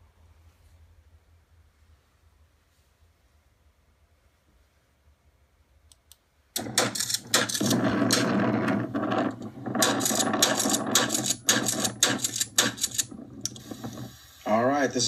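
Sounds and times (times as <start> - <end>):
steady low hum: 0.0 - 15.0
sharp clacks and knocks: 6.6 - 14.2.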